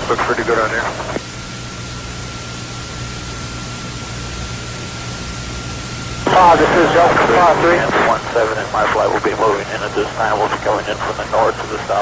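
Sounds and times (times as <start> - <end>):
recording hiss and hum: 0.0 - 12.0.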